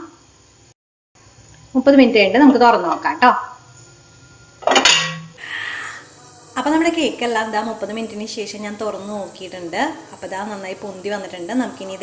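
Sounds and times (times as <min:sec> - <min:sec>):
metal lid clattering: 0:04.6 - 0:05.4
soft steam hiss: 0:05.4 - 0:12.0.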